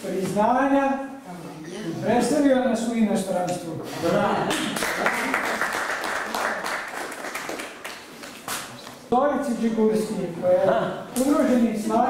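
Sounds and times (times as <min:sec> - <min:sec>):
small audience applauding: 0:04.4 - 0:08.7.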